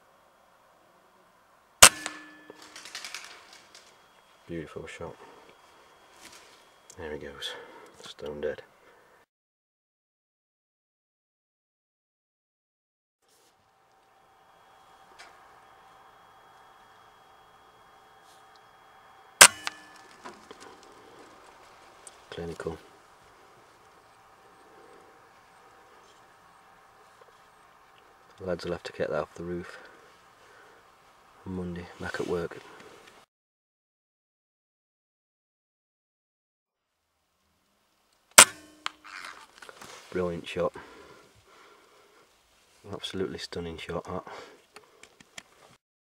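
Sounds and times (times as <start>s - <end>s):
faint steady hum: 0.0s - 9.3s, 13.2s - 33.3s, 36.8s - 45.8s
air rifle shot: 1.8s - 2.6s, 19.4s - 20.0s
sharp click: 19.4s - 20.1s.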